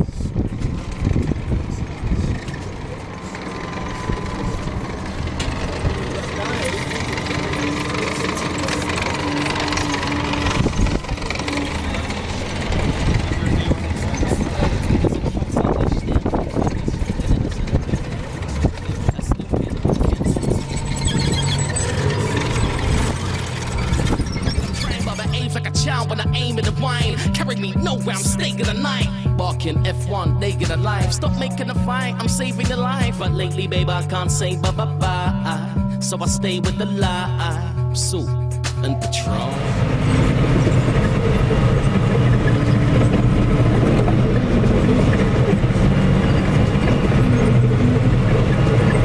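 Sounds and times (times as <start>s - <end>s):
armoured vehicle engine running: 0.0s - 49.0s
tracks clattering: 0.3s - 25.5s, 39.0s - 49.0s.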